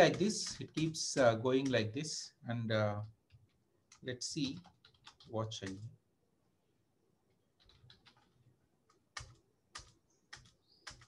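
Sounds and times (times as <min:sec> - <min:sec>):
computer keyboard keystrokes: 0:00.0 - 0:01.0, 0:03.3 - 0:05.9, 0:07.6 - 0:11.0.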